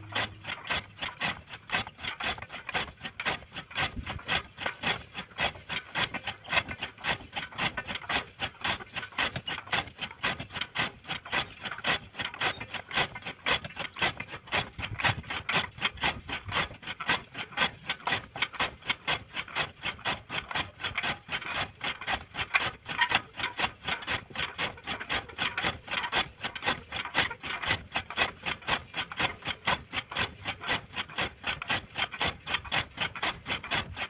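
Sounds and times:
chaff cutter chopping clatter: 0.0 - 34.0.

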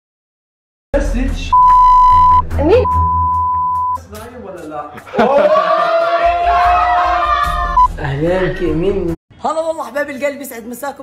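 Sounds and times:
electronic bleep tone: 1.5 - 4.0.

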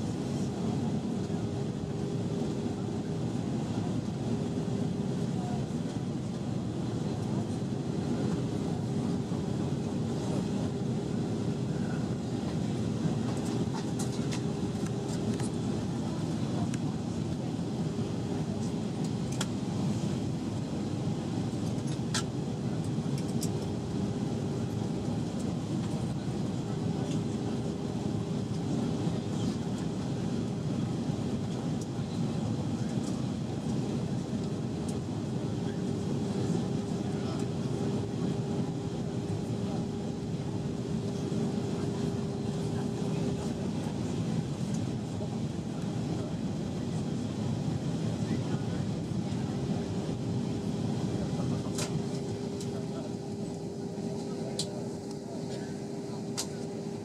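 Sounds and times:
airliner cabin engine drone: 0.0 - 57.0.

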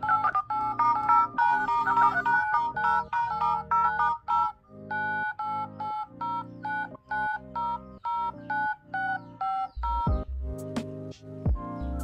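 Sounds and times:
dial-pad touch tone beeps: 0.0 - 10.1.

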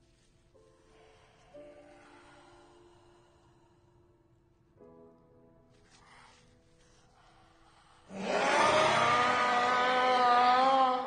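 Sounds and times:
creature screaming harshly: 8.1 - 11.0.

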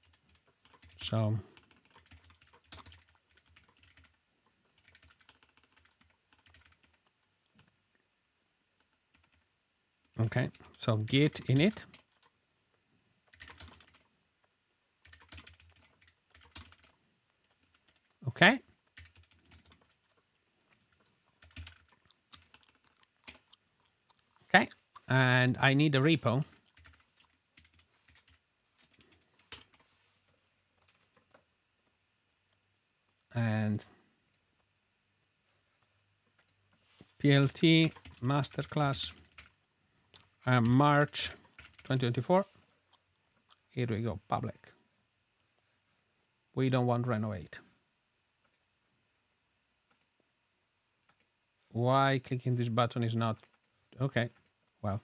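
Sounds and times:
keyboard keys typing: 0.0 - 7.7, 8.8 - 9.4, 10.2 - 12.4, 13.2 - 14.1, 15.0 - 18.2, 18.8 - 24.8, 26.4 - 29.9, 37.2 - 39.6, 40.2 - 42.2, 51.0 - 51.3, 53.3 - 54.6.

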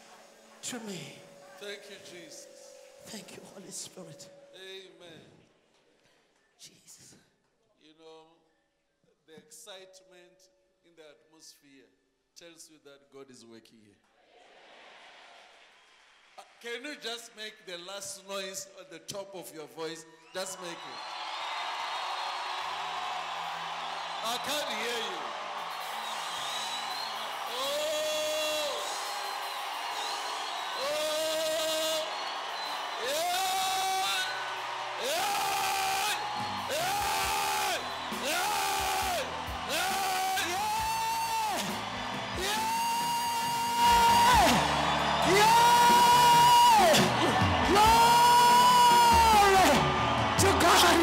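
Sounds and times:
crowd noise: 0.0 - 4.5, 20.5 - 51.0
congregation shouting: 20.8 - 51.0
lead voice crying out: 42.3 - 51.0.

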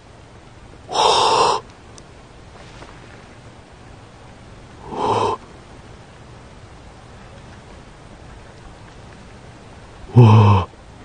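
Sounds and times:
loud animal call: 0.9 - 1.6, 4.8 - 5.4, 10.1 - 10.7.

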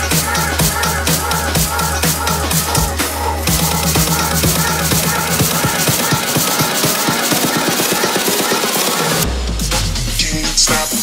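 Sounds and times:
electronic dance music: 0.0 - 11.0.

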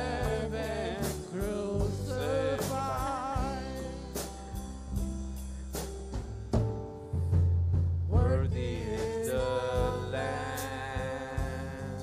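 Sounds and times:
person singing: 0.0 - 4.2, 8.1 - 12.0
worship band playing slow song: 0.0 - 12.0.

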